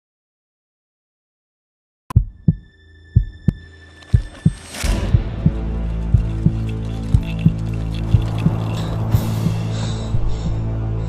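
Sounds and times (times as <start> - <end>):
heartbeat thumps: 2.1 - 3.6, 4.2 - 10.7
music: 2.1 - 11.0.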